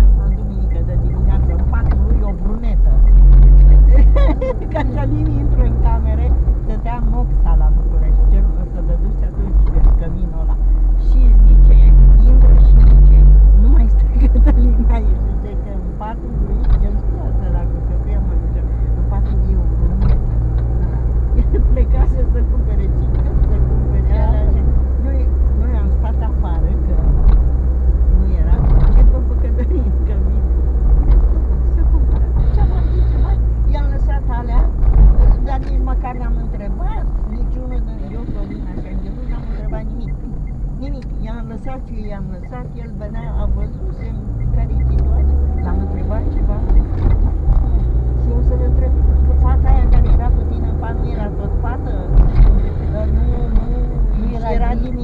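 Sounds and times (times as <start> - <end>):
people talking: 0.0 - 27.2, 28.1 - 30.5, 31.1 - 55.0
car engine and road rumble: 0.0 - 55.0.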